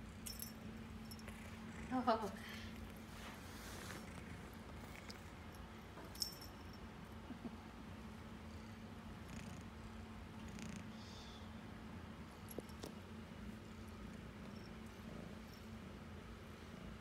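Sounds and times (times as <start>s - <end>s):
kitten purring: 1.1s - 5.5s, 8.7s - 11.0s.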